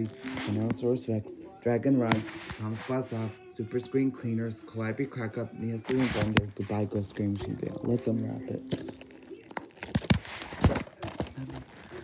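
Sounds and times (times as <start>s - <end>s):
plastic wrap rustle: 5.9s - 12.0s.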